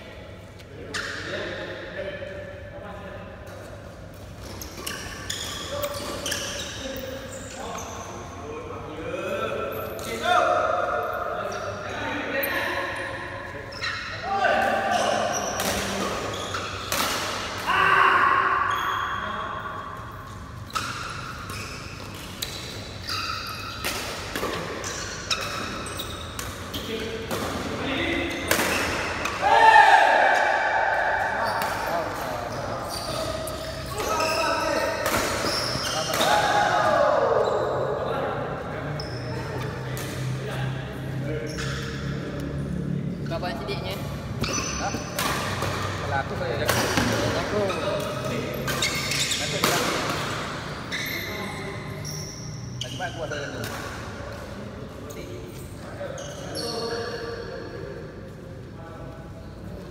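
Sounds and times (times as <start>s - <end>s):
shoes squeaking on court floor: 3.5s - 8.4s, 12.4s - 17.4s, 18.6s - 29.4s, 31.2s - 36.5s, 38.7s - 40.4s, 41.0s - 58.4s
racket hitting shuttlecock: 28.5s - 29.4s, 46.6s - 47.4s.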